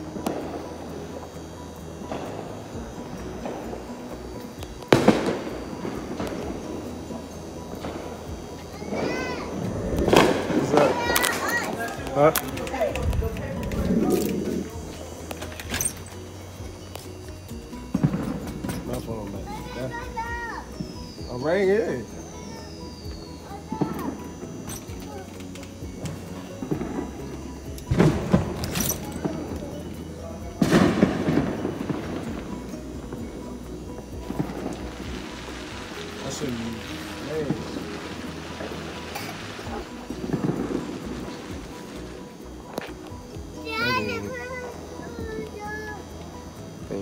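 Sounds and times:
fireworks bangs: 0.0s - 1.4s, 2.0s - 25.2s, 25.9s - 43.0s
fireworks crackling: 0.0s - 47.0s
voices talking: 0.0s - 47.0s.

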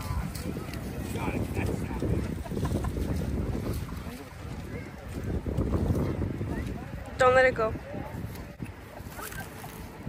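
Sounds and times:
faint voices: 0.0s - 10.0s
wind noise on microphone: 0.0s - 10.0s.

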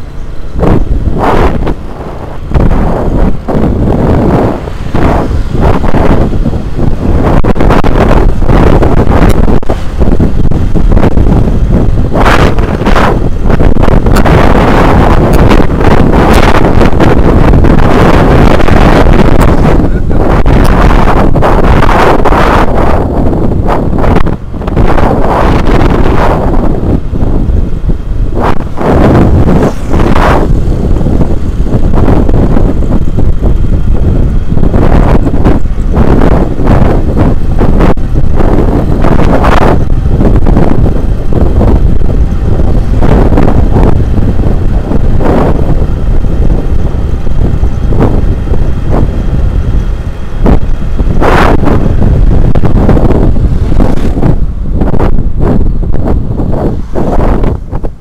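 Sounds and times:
motorbike engine and road noise: 0.0s - 58.0s
wind rumble on microphone: 0.0s - 58.0s.

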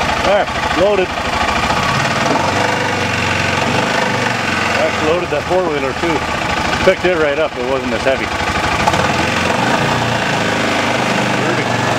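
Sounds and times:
engine idling: 0.0s - 11.9s.

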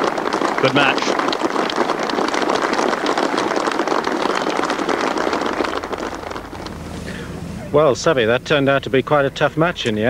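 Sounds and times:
golf gallery applauding: 0.0s - 10.0s.

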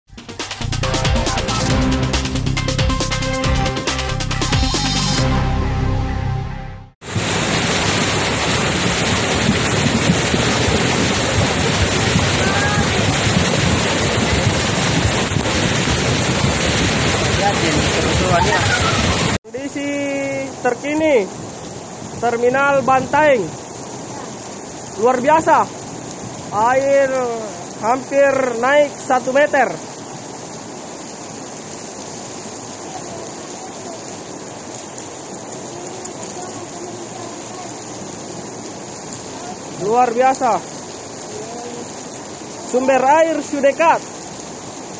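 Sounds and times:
floodwater rushing across road: 7.0s - 44.9s.

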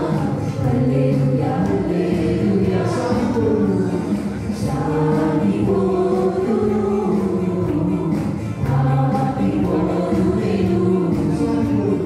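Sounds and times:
group singing in unison: 0.0s - 12.0s.

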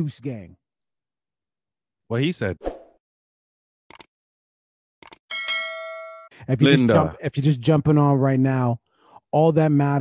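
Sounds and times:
notification bell ding: 5.3s - 6.3s.

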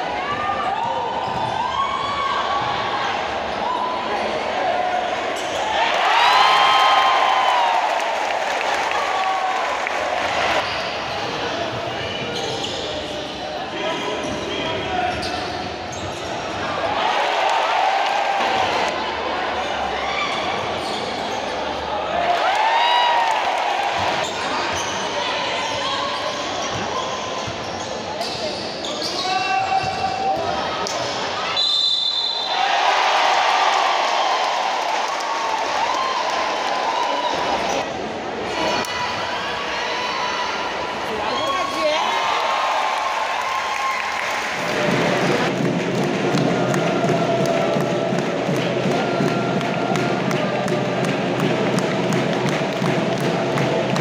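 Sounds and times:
crowd chatter: 0.0s - 22.5s, 23.5s - 43.0s
sneakers squeaking: 0.2s - 2.8s, 5.3s - 5.8s, 10.6s - 16.8s, 19.6s - 21.9s, 24.0s - 32.6s.

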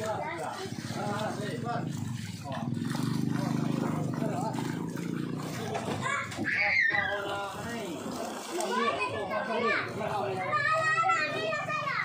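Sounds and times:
muddy water sloshing and splashing: 0.0s - 12.0s
voices talking and calling out: 0.0s - 12.0s.

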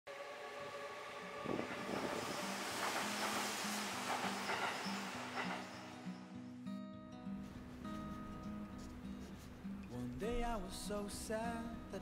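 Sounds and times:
train running on tracks: 0.1s - 6.4s
music: 1.2s - 12.0s.

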